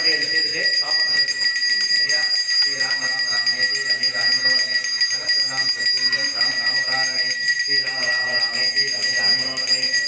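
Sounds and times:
high-pitched ringing tones: 0.0 - 10.0
indistinct voices: 0.0 - 10.0.

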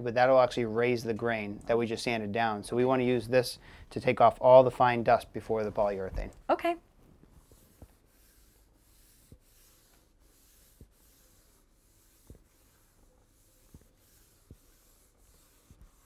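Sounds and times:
cloth rubbing on wood: 7.1 - 16.0.

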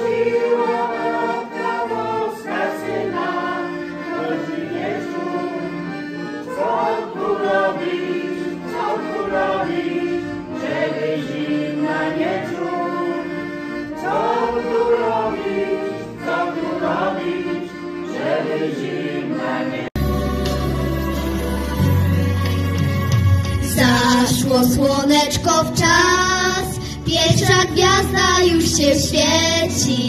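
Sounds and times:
accordion: 0.0 - 30.0
folk vocal group singing in harmony: 0.0 - 30.0.

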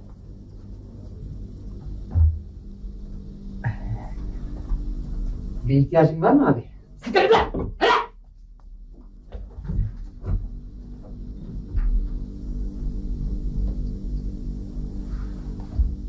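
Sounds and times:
low droning background music: 10.5 - 16.0.

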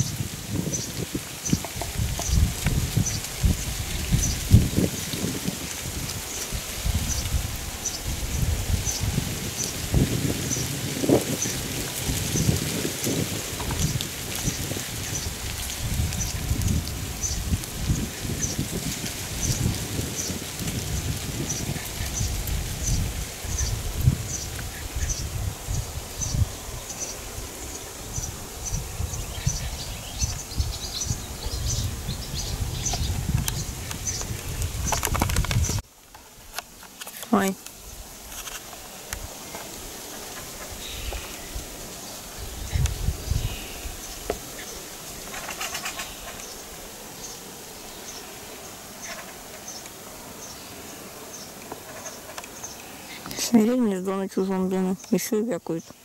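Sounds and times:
wind rumble on microphone: 0.0 - 36.6, 37.2 - 48.0.

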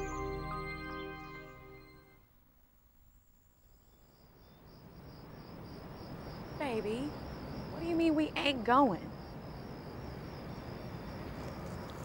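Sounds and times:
crickets chirping: 2.8 - 12.0.

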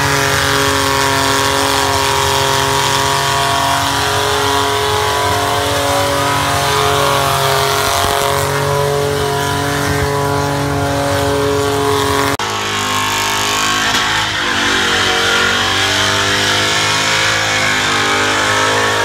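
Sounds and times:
car engine at high revs: 0.0 - 19.0
car engine at lower pitch: 0.0 - 19.0.

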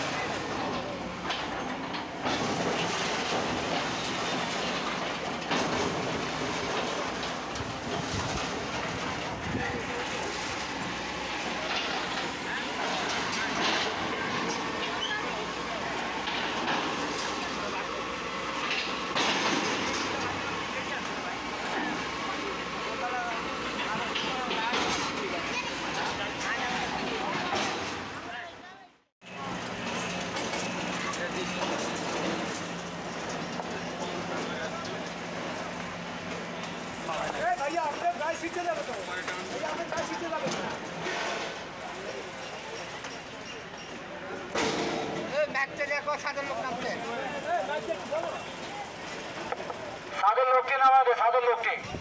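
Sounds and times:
hydraulic excavator running: 0.0 - 52.0
falling bricks and debris crashing: 0.6 - 10.9.

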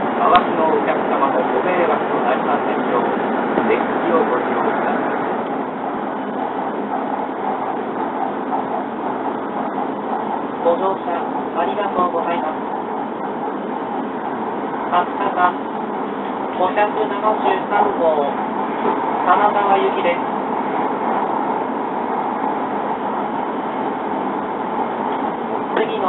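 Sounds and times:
pa announcement voice: 0.0 - 5.5, 10.6 - 13.5, 14.8 - 15.8, 16.4 - 20.3, 25.7 - 26.0
train cabin running noise: 0.0 - 26.0.

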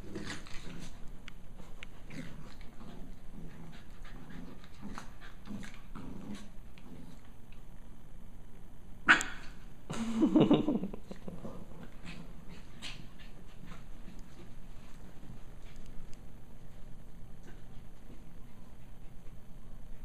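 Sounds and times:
puppies play growling: 0.0 - 7.9, 10.8 - 20.0.

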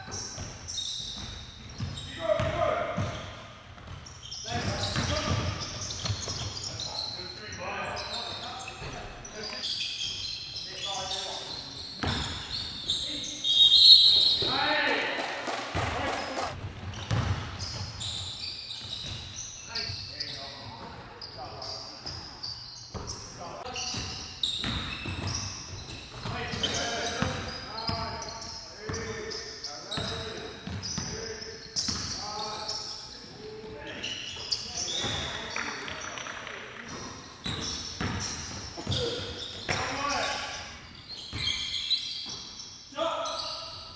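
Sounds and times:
players' voices echoing: 1.6 - 9.7, 10.5 - 16.6, 26.1 - 40.8
basketball bouncing on hardwood floor: 16.9 - 17.5.

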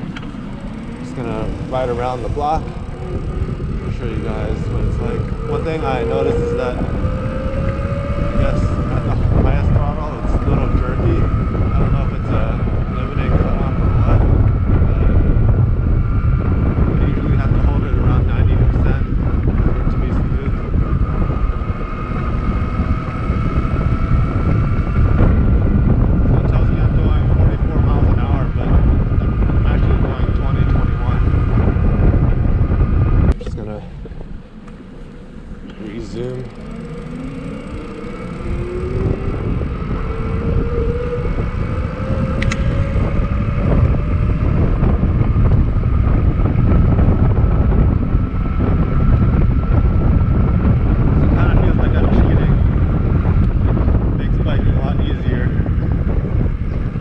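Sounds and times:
electric motor whine: 0.0 - 27.2, 34.2 - 56.8
wind buffeting microphone: 0.0 - 57.0.

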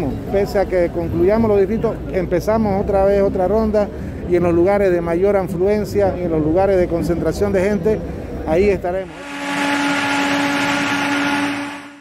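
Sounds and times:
steady hum: 8.9 - 12.0.

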